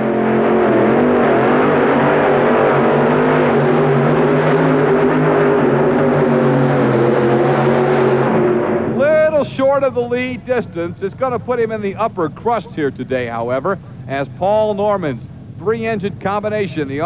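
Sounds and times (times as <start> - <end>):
pulling tractor engines at full throttle: 0.0 - 17.0.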